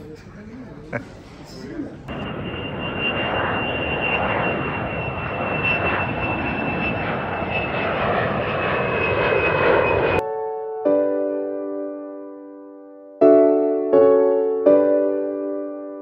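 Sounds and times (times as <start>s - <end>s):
high jet whine: 1.0s - 10.2s
jet engines roaring: 1.0s - 10.2s.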